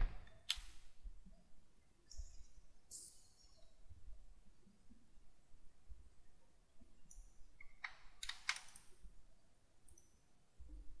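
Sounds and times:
keyboard keystrokes: 0:07.8 - 0:08.8.

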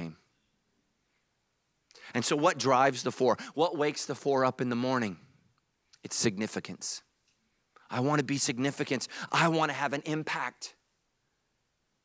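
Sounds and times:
man speaking: 0:00.0 - 0:00.3, 0:02.0 - 0:05.2, 0:06.0 - 0:07.1, 0:07.9 - 0:10.8.

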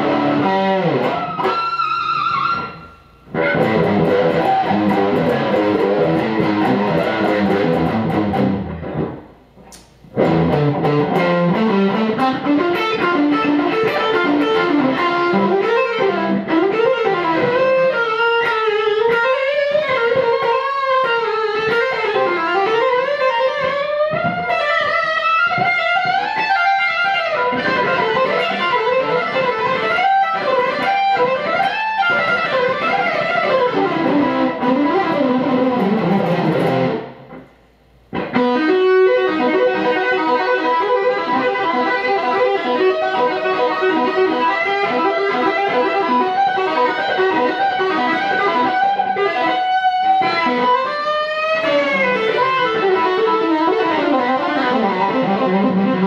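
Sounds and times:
distorted electric guitar lead: 0:00.0 - 0:56.0.

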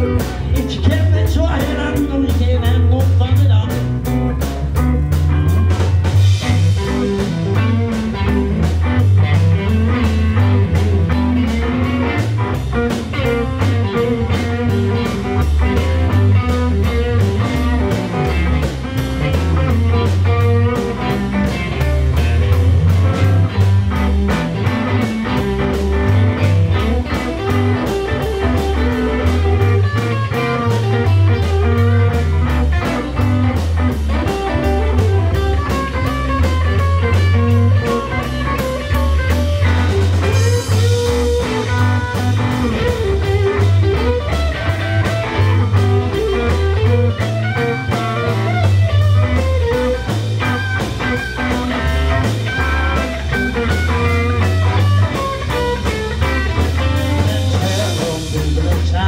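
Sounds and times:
bass guitar line: 0:00.0 - 0:59.0
drum kit beat: 0:00.0 - 0:59.0
electric guitars: 0:00.0 - 0:59.0.

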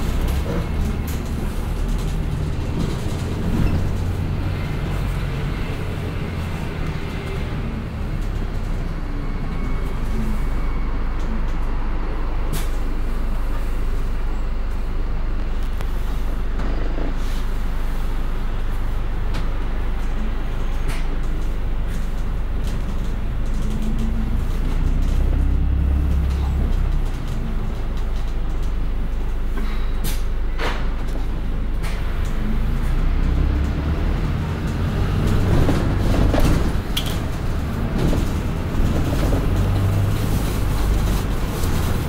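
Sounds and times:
bus engine and road noise: 0:00.0 - 0:42.0.

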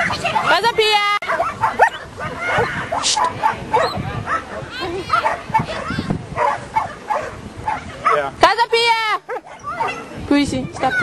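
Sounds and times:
dogs yipping and barking: 0:00.0 - 0:08.3, 0:09.2 - 0:10.2.

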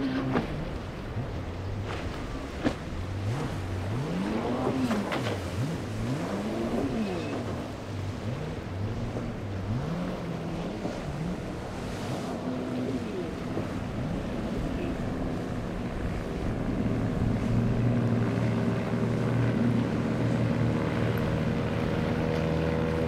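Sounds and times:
outboard engines revving: 0:00.0 - 0:23.0
water rushing off hull: 0:00.0 - 0:23.0
wind: 0:00.0 - 0:23.0.

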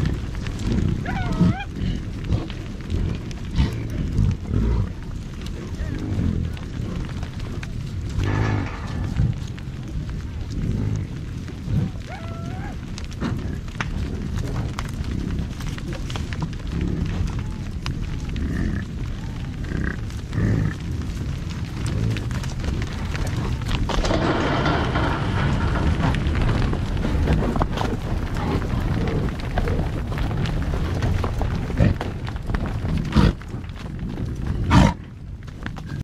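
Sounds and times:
bison grunting: 0:00.0 - 0:35.2
herd walking: 0:00.0 - 0:36.0
hoof clicks: 0:00.0 - 0:36.0
low rumble: 0:00.0 - 0:36.0.

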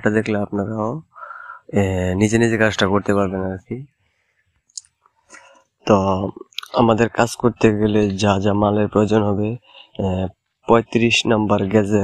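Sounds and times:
man speaking: 0:00.0 - 0:04.0, 0:04.8 - 0:12.0.

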